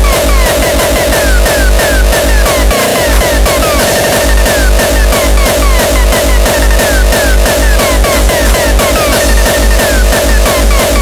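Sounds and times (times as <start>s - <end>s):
hardcore electronic dance music: 0.0s - 11.0s
heavy pounding kick drum: 0.0s - 11.0s
short falling synth notes: 0.0s - 11.0s.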